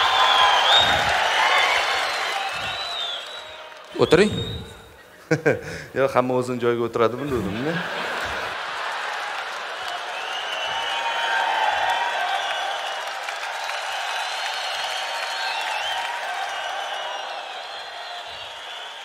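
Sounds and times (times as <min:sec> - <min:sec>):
audience applauding: 0:00.0 - 0:04.8, 0:07.6 - 0:19.0
audience laughing: 0:07.2 - 0:10.1.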